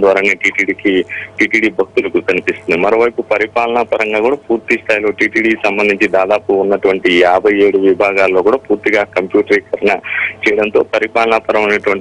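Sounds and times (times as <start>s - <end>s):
man speaking over telephone: 0.0s - 12.0s.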